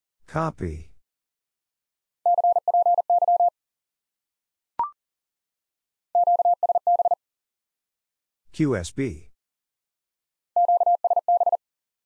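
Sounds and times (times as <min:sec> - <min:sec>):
morse code beeps: 0:02.3 - 0:03.5, 0:06.2 - 0:07.2, 0:10.6 - 0:11.6.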